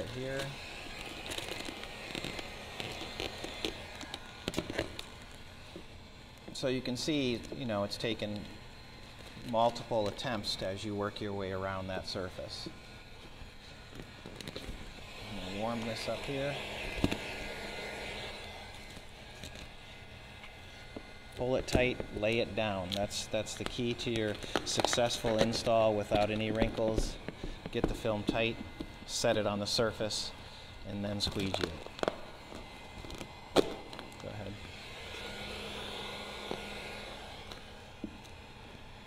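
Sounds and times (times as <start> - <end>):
heat gun hiss: 0.0 - 39.0
vinyl film crackling: 0.4 - 5.6, 31.2 - 34.3.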